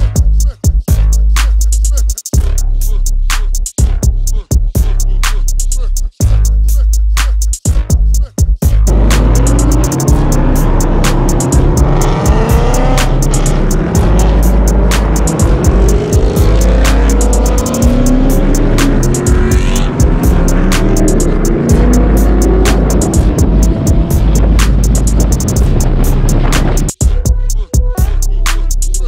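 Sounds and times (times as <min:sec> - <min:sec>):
music with heavy bass: 0:00.0 - 0:29.0
car engines revving: 0:08.9 - 0:27.0.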